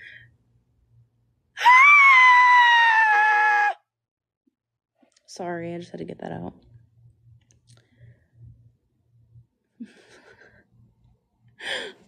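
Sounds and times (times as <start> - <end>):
woman screaming: 1.6 - 3.8.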